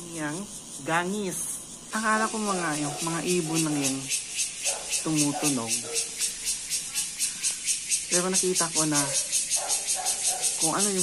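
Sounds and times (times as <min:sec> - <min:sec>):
cicadas buzzing: 0:00.0 - 0:11.0.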